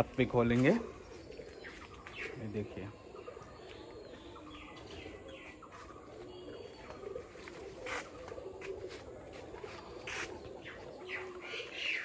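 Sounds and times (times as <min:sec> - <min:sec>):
doves cooing: 0:00.0 - 0:12.0
small birds chirping: 0:00.0 - 0:12.0.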